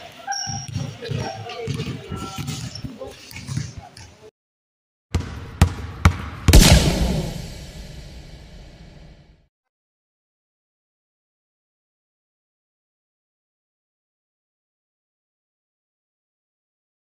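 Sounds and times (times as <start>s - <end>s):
people talking over each other: 0.0s - 4.2s
logo sting with sharp hits: 6.5s - 9.3s.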